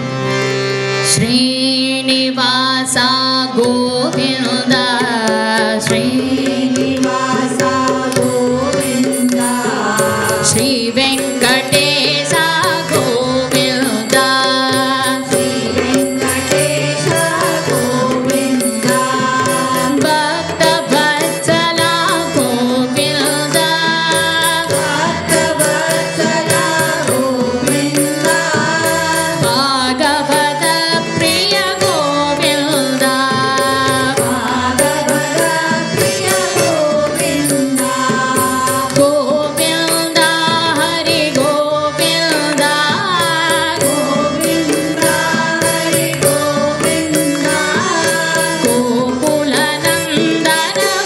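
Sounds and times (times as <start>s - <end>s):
sustained harmonium: 0.0s - 51.0s
hand drums rhythm: 3.0s - 51.0s
voices singing a melody: 3.8s - 51.0s.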